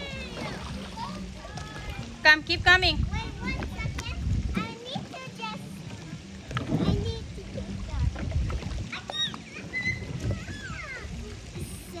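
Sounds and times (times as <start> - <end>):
water sloshing and splashing: 0.0 - 12.0
children's voices and squeals: 8.9 - 12.0.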